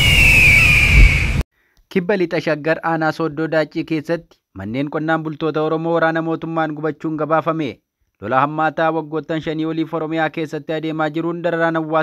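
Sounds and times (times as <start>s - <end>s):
high whistling tone: 0.0s - 1.4s
low rumble: 0.0s - 1.4s
man speaking: 1.9s - 12.0s.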